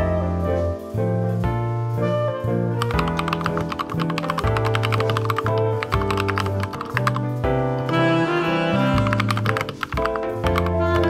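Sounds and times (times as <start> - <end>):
background music: 0.0 - 11.0
fast keyboard typing: 2.8 - 8.1, 8.7 - 11.0.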